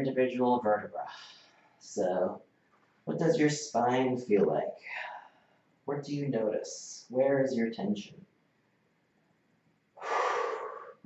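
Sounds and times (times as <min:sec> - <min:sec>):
man breathing: 0:01.1 - 0:01.8, 0:10.0 - 0:11.0.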